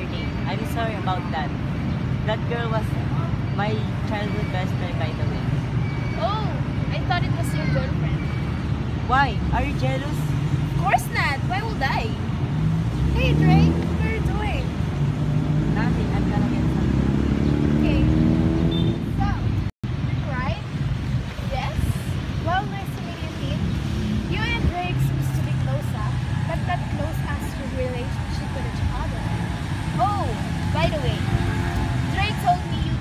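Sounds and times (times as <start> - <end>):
traffic rumble: 0.0 - 33.0
young woman speaking: 20.1 - 20.7, 21.4 - 23.7, 24.3 - 29.3, 30.0 - 31.2, 32.1 - 33.0.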